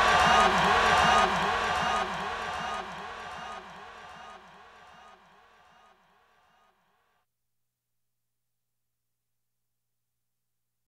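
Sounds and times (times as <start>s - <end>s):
man's voice with delay echo: 0.0s - 4.1s
crowd noise: 0.0s - 6.0s.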